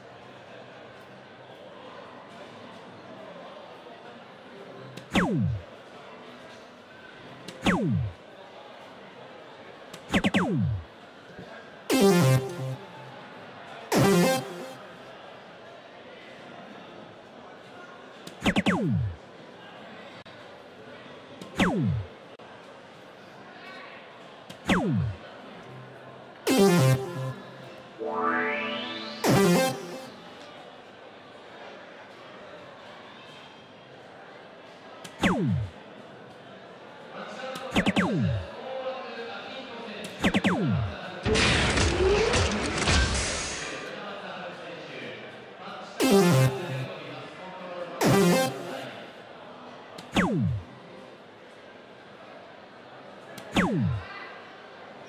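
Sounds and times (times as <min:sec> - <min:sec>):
falling electronic sweeps: 0:05.1 - 0:05.6, 0:07.6 - 0:08.1, 0:10.1 - 0:10.8, 0:11.9 - 0:13.1, 0:13.9 - 0:14.9, 0:18.4 - 0:19.2, 0:26.5 - 0:30.4, 0:37.8 - 0:38.5, 0:46.0 - 0:47.0, 0:48.0 - 0:49.0.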